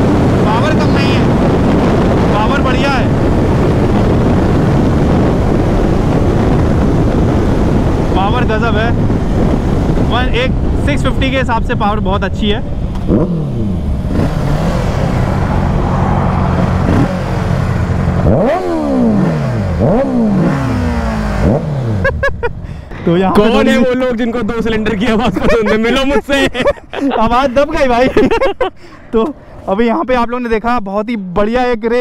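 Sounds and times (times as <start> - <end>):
motorcycle engines droning: 0.0 - 27.4
heavy wind noise on microphone: 0.0 - 30.8
motorcycle throttle blips: 12.6 - 23.0
person speaking: 22.8 - 30.0.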